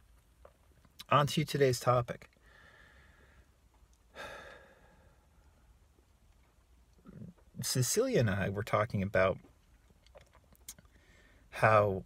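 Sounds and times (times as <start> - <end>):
man sighing: 4.1 - 5.2.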